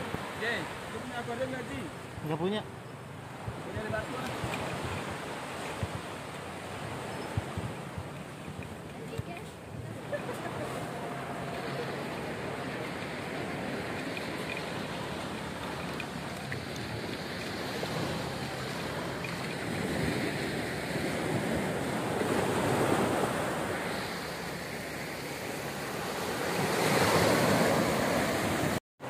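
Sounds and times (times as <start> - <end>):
sea surf breaking on beach: 0.0 - 2.6, 3.3 - 28.8.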